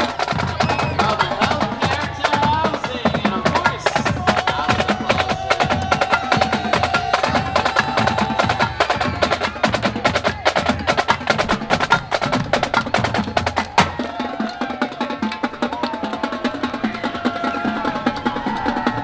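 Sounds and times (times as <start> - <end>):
drum circle percussion: 0.0 - 19.0.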